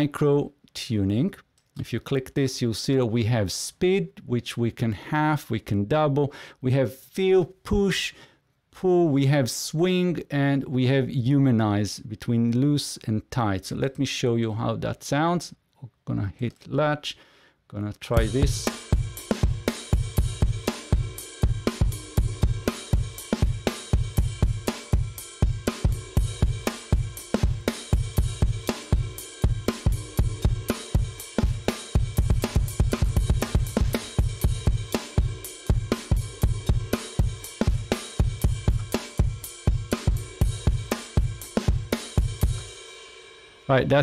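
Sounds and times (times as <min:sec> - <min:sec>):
rock drum groove: 0:18.2 - 0:44.0.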